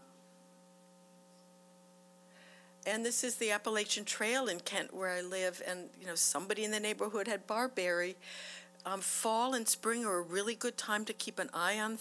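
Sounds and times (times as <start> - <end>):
faint electrical hum: 0.0 - 12.0
woman talking: 2.9 - 8.2, 8.9 - 12.0.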